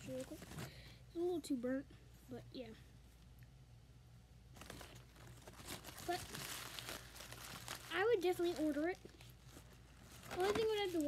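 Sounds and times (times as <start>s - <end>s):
food wrapper crinkling: 4.6s - 11.0s.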